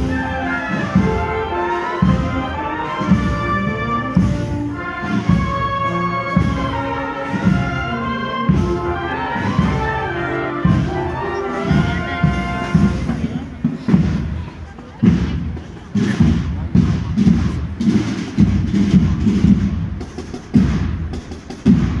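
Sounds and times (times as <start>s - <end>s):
crowd voices: 0.0s - 22.0s
marching band drums: 0.0s - 22.0s
marching band wind tune: 0.0s - 22.0s.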